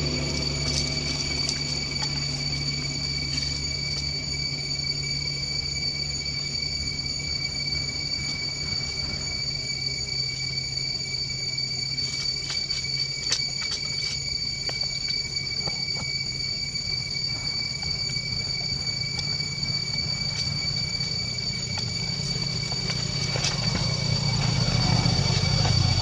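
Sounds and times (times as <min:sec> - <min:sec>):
forest insects droning: 0:00.0 - 0:26.0
low hum: 0:00.0 - 0:26.0.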